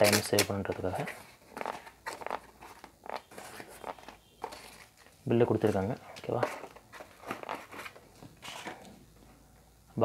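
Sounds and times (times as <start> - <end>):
packing paper rustling: 0.0 - 8.9.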